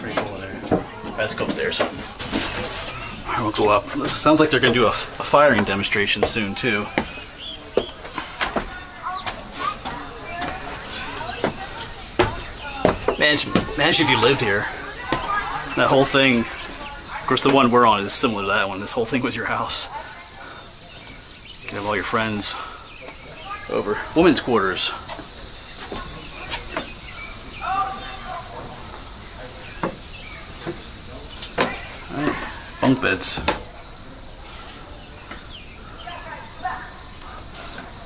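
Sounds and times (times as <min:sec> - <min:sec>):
footsteps on wooden stairs: 0:00.0 - 0:18.7, 0:20.9 - 0:33.8
faint distant voices: 0:00.0 - 0:38.0
high-pitched insect drone: 0:02.9 - 0:38.0.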